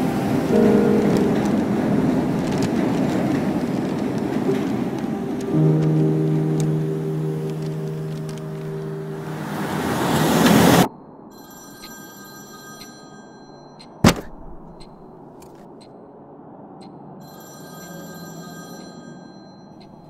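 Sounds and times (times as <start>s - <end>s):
train rumbling past: 0.0s - 10.9s.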